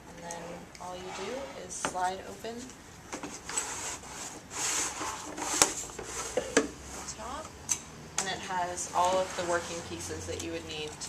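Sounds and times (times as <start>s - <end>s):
wooden lid scraping open: 0.3s - 1.9s.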